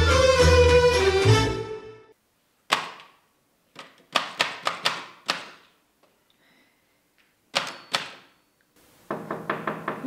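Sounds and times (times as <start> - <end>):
sharp ringing knocks: 7.6 - 8.5.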